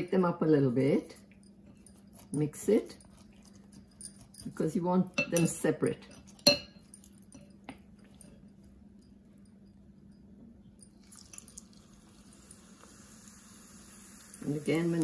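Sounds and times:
metal spoon clinking on glass bowl: 1.2 - 11.6
hot oil sizzling in a pan: 11.2 - 15.0.

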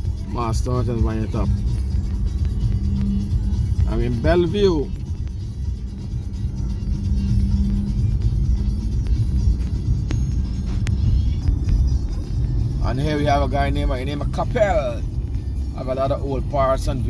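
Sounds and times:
car engine and tyres rumbling: 0.0 - 17.0.

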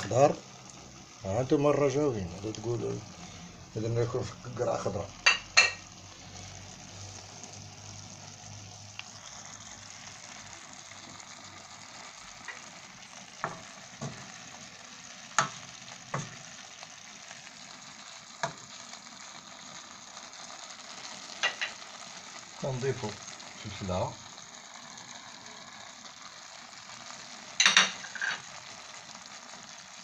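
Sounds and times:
food sizzling in a pot: 0.0 - 30.0.

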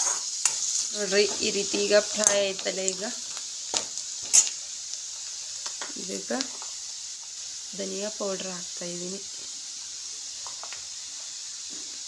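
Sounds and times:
spoon scraping and clinking on pan: 0.0 - 2.4, 3.8 - 4.6
onions sizzling in a pan: 0.0 - 12.0.

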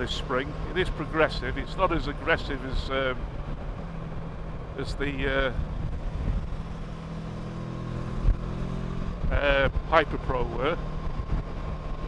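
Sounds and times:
motorcycle engine cruising: 0.0 - 12.0
road noise: 0.0 - 12.0
wind noise: 5.3 - 10.0, 10.8 - 12.0.

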